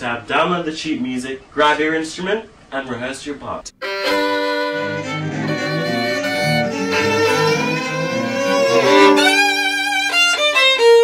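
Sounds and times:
lower accompaniment: 3.8 - 11.0
violin playing: 3.8 - 11.0.

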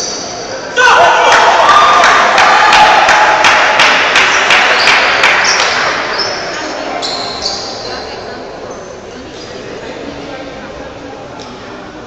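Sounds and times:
voices in a large hall: 0.0 - 12.0.

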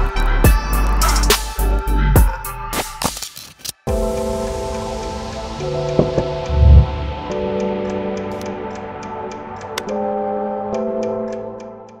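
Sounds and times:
held synth chords: 5.4 - 7.9.

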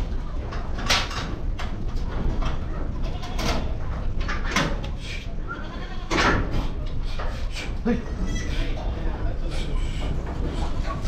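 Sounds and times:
goats bleating: 5.5 - 6.2.

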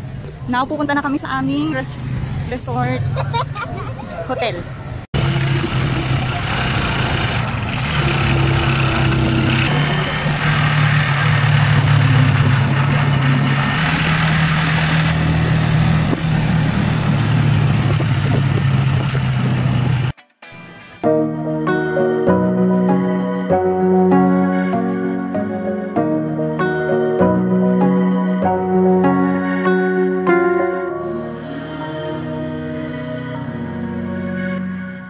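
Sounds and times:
road noise: 0.0 - 20.8
vehicle engine running: 4.8 - 20.2.

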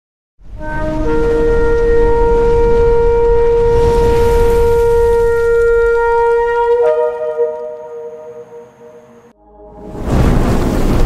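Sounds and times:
shofar long note: 0.5 - 10.0.

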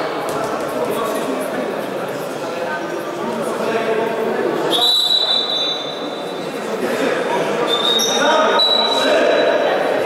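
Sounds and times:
murmur of voices: 0.0 - 10.0
high-pitched whistle tone: 4.7 - 6.4, 7.7 - 9.1.

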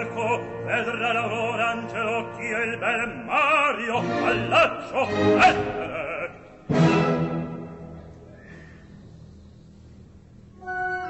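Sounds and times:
loud orchestral chord: 6.7 - 8.1.

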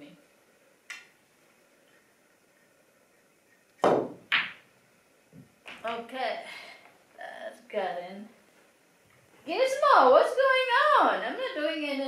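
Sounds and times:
pool cue striking ball: 3.8 - 4.6.

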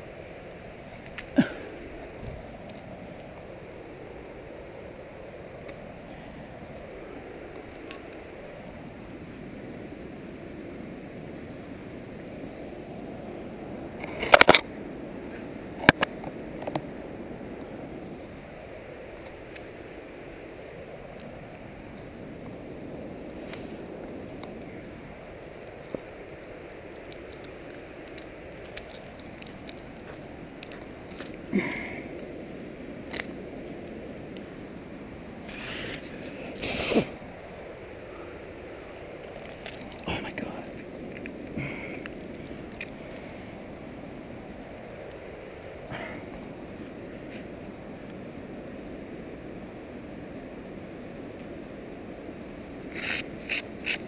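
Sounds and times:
steady hiss: 0.0 - 54.0.

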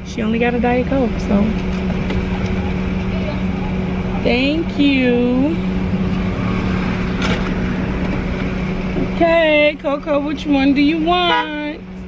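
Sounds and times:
car engine hum: 0.0 - 12.0.

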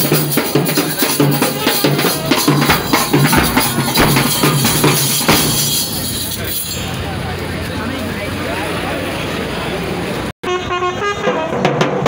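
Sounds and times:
drum band playing: 0.0 - 6.8, 11.2 - 12.0
crowd voices: 0.0 - 11.3
street crowd din: 0.0 - 12.0.

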